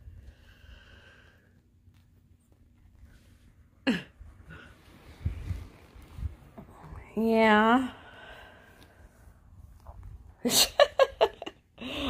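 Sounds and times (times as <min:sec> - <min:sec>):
bedding rustling: 0:00.0 - 0:11.3.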